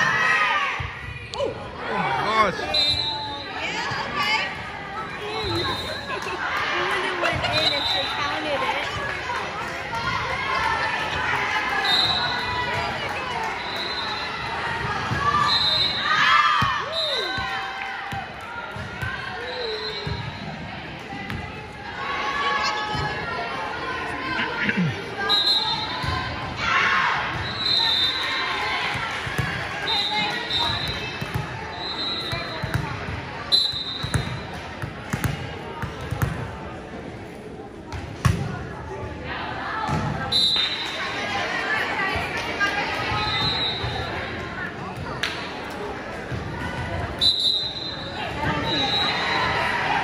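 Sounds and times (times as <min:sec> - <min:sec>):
chatter of people: 0:00.0 - 0:16.1, 0:16.8 - 0:50.0.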